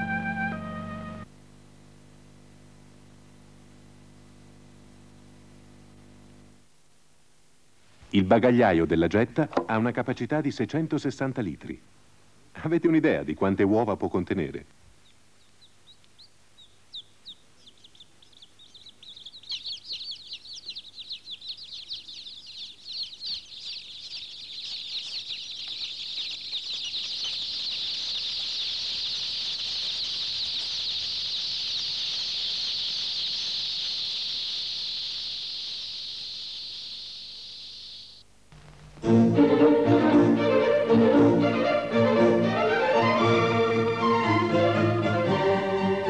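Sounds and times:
baby chicks peeping: 14.9 - 38.2.

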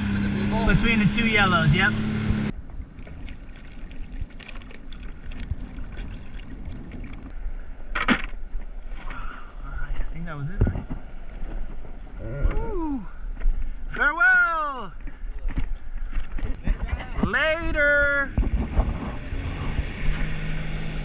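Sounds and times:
jet ski engine running: 0.0 - 2.5, 18.3 - 21.0
low water noise: 0.0 - 21.0.

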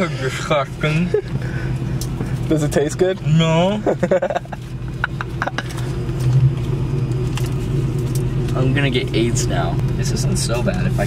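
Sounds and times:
car engine idling: 0.0 - 11.0.

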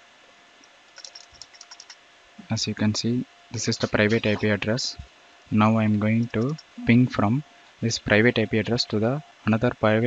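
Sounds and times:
keyboard key clicks: 0.9 - 2.0.

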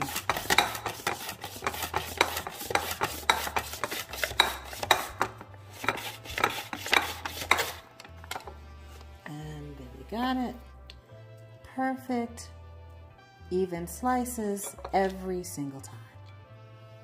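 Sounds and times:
mandoline slicer scraping clacks: 0.0 - 7.8.

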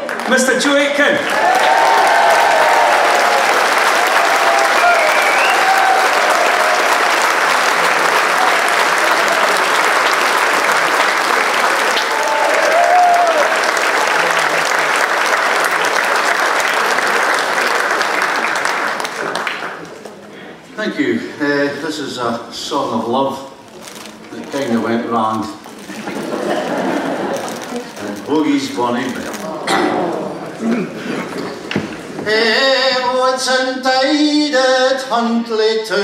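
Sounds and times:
audience applauding: 0.0 - 20.1, 25.9 - 30.2.

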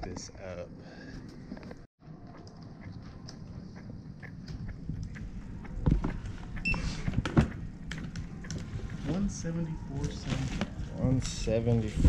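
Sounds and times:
steady low hum: 0.0 - 12.0
short electronic beep: 6.6 - 6.9.

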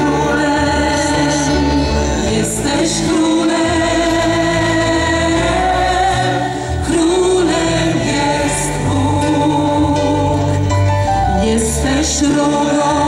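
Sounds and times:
singers holding long notes: 0.0 - 13.0
steady low bass line: 0.0 - 13.0
worship band playing: 0.0 - 13.0.

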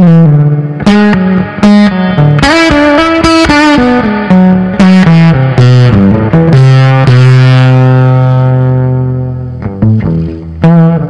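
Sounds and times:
fuzz electric guitar low note: 0.0 - 11.0.

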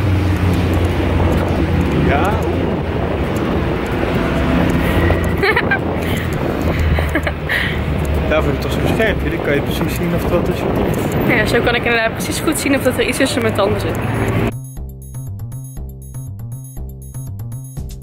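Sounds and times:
wind buffeting microphone: 0.0 - 14.5.

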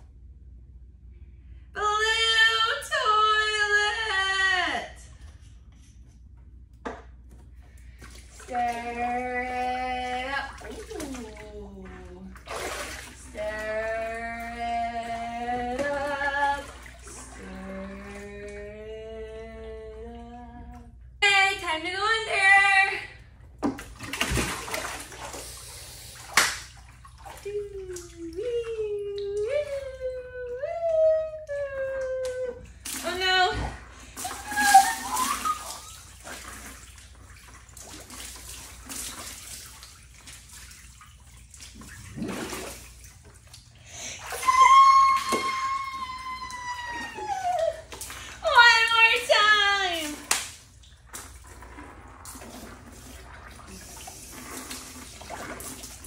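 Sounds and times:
water sloshing faintly: 7.2 - 56.0
water splashing: 7.8 - 20.0, 23.6 - 56.0
woman high-pitched whoop: 34.2 - 35.9, 44.2 - 48.7.

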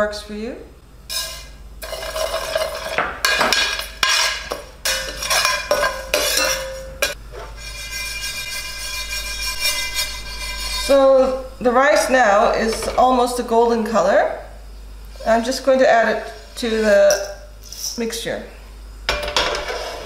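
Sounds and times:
metal spoon scraping grains in pan: 1.1 - 11.2, 16.1 - 18.1, 19.4 - 20.0.

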